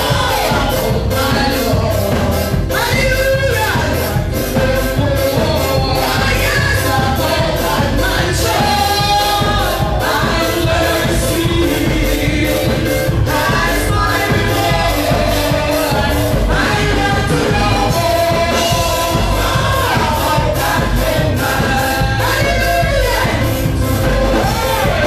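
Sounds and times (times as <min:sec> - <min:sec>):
voices singing gospel music: 0:00.0 - 0:25.0.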